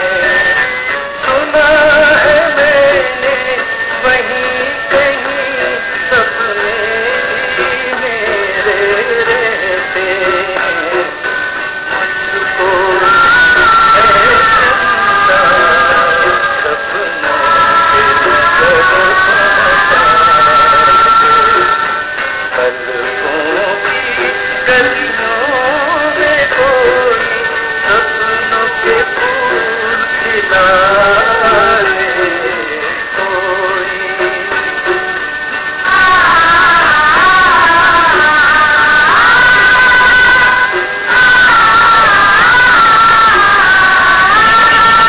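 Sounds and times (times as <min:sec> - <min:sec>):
song with melodic vocals: 0:00.0 - 0:45.0.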